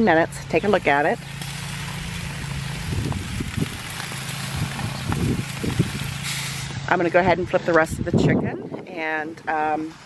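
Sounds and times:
meat sizzling on a grill: 0:01.0 - 0:06.7.

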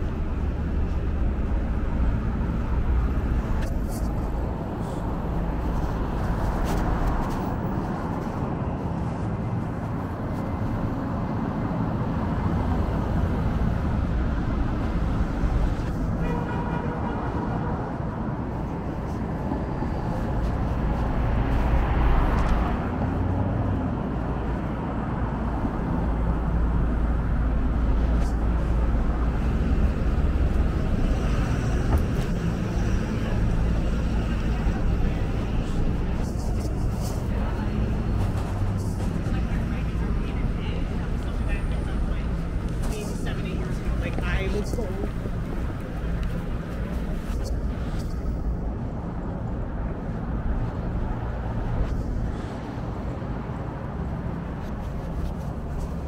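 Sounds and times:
street traffic passing: 0:00.0 - 0:56.0.

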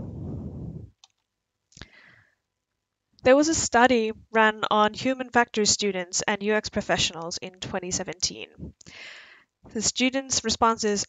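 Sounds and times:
breath on microphone: 0:00.0 - 0:00.9, 0:01.8 - 0:02.4, 0:08.6 - 0:09.5.

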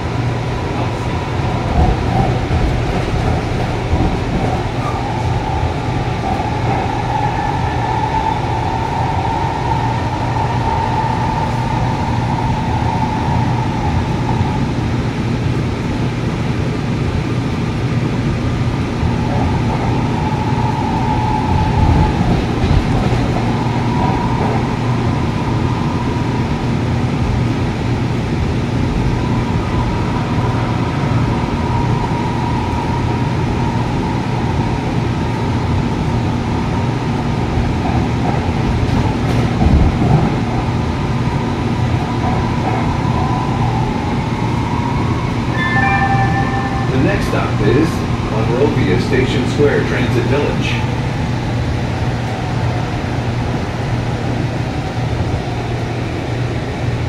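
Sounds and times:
train interior rumble: 0:00.0 - 0:57.0
faint wavering whine: 0:44.6 - 0:48.8
onboard stop announcement: 0:44.8 - 0:51.1
two-tone chime: 0:45.5 - 0:47.7.

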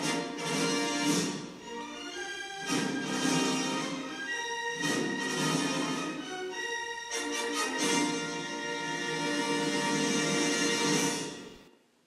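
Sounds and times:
orchestral fanfare chord: 0:00.0 - 0:11.6.

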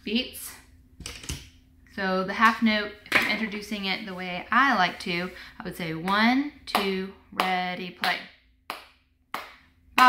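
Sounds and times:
hands clapping a steady beat: 0:06.1 - 0:09.7.

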